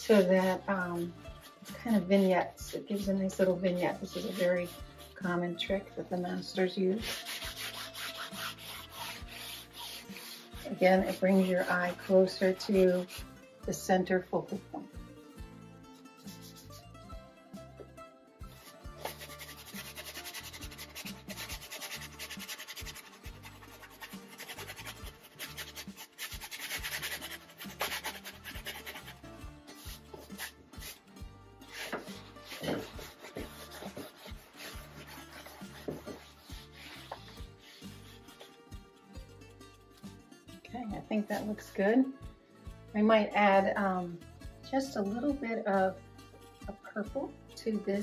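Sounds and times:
rag rubbing canvas: 0.0s - 5.4s, 7.0s - 13.3s, 16.2s - 16.8s, 18.5s - 29.2s, 29.8s - 31.0s, 31.6s - 38.6s
background music with low notes: 0.0s - 48.0s.

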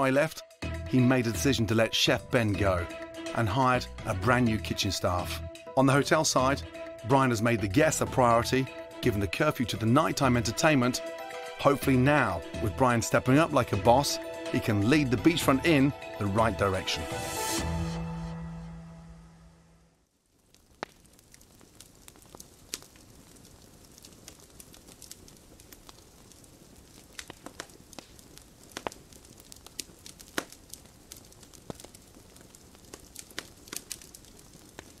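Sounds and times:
closing music: 0.0s - 19.9s
faint steady hiss: 19.8s - 35.0s
crackles and clicks: 20.0s - 35.0s.

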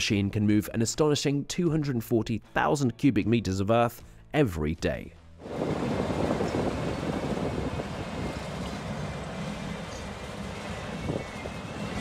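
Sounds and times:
excavator wheel rumbling: 5.5s - 12.0s.

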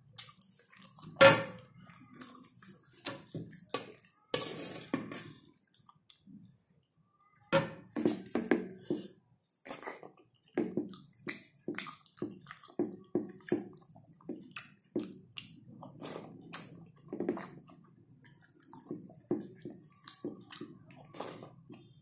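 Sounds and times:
chewing and lip smacking: 0.2s - 1.2s, 10.8s - 22.0s.

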